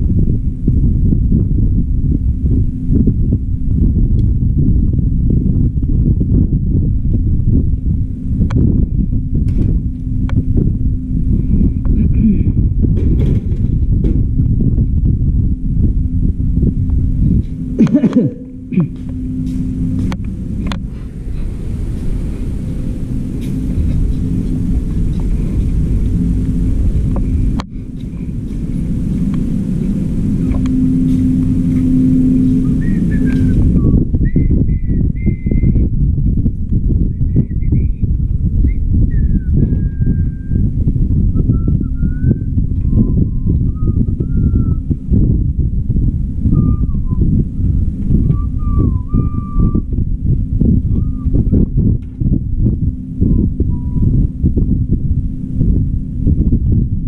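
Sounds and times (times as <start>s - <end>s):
low uneven rumble: 0.0s - 57.0s
steady hum with hiss: 0.0s - 57.0s.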